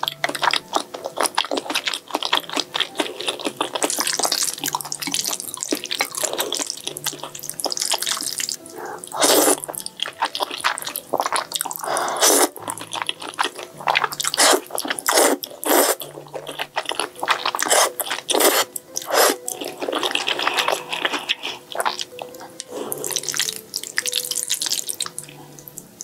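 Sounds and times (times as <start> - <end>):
sticky chewing: 0.0 - 25.9
noodle slurps: 8.1 - 9.6, 11.2 - 12.6, 13.9 - 16.1, 17.2 - 22.0.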